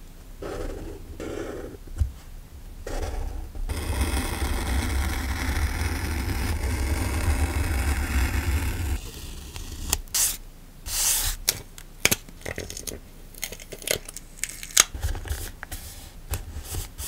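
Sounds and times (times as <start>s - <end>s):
craft knife cutting paper: 3.7s - 11.1s.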